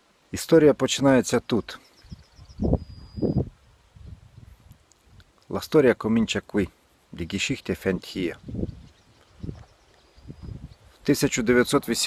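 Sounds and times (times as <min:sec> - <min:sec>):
faint high chirping: 0:01.3 - 0:04.4, 0:08.2 - 0:11.4.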